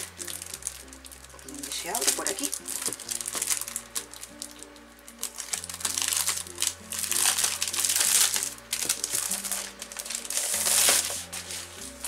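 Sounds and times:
background music: 0:00.0 - 0:12.0
cellophane crinkling: 0:00.0 - 0:12.0.

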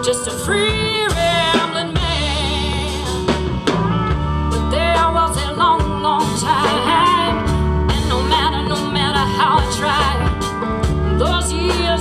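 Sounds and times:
live blues band playing: 0:00.0 - 0:12.0
vibrato lead line: 0:00.0 - 0:12.0.

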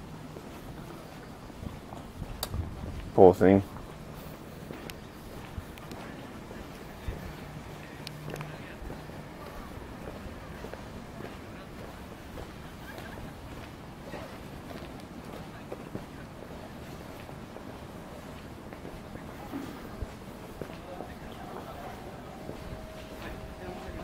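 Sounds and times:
street ambience: 0:00.0 - 0:24.0
low steady hum: 0:17.4 - 0:24.0.

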